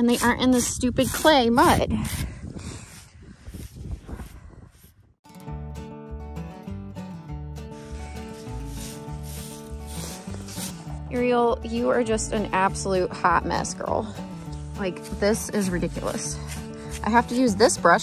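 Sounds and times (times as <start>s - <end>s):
comb scrubbing animal coat: 0.0s - 1.8s, 7.9s - 11.0s.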